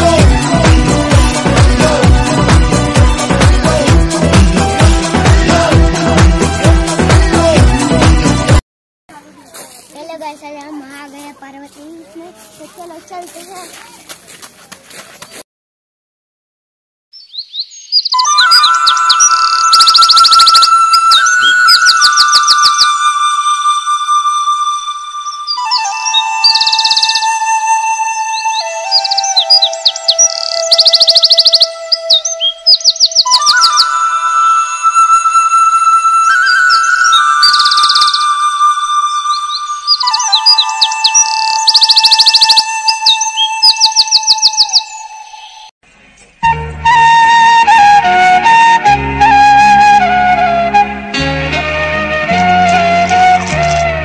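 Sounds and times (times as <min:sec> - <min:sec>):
twittering bird-like chirps: 0:17.2 - 0:23.1, 0:25.2 - 0:27.5, 0:28.1 - 0:34.0, 0:36.4 - 0:38.5, 0:39.2 - 0:45.7
background music held tones: 0:42.6 - 0:54.0.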